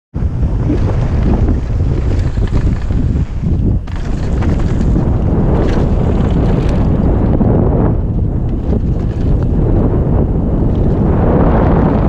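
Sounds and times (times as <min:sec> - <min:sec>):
wind buffeting microphone: 0:00.1 - 0:12.0
tyres on dirt: 0:00.8 - 0:07.5, 0:08.1 - 0:09.8.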